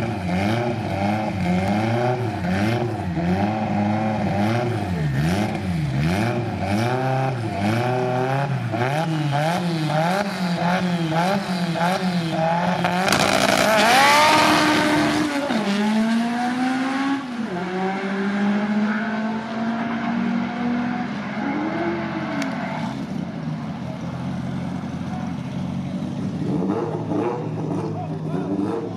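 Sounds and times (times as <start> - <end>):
drag racing cars accelerating: 0.0 - 28.9.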